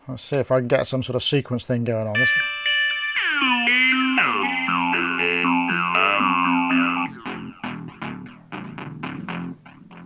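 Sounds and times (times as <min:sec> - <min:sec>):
plucked synth bass notes: 0:02.2 - 0:10.0.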